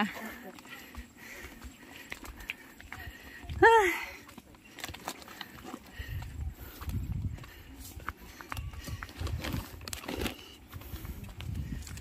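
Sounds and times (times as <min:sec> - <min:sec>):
faint footsteps on path: 0:00.0 - 0:12.0.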